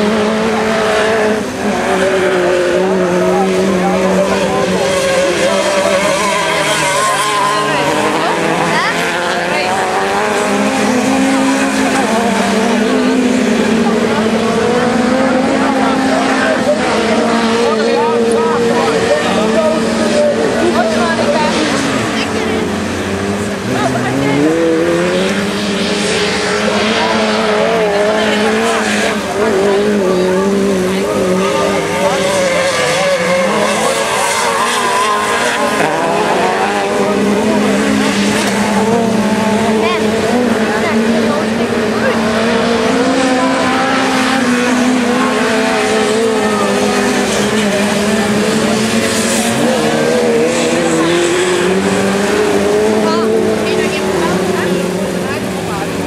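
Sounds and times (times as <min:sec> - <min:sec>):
race car engines revving: 0:00.0 - 0:56.0.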